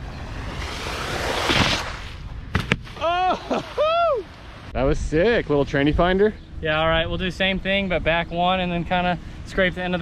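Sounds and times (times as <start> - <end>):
wakeboard skimming water spray: 0.2 - 2.2.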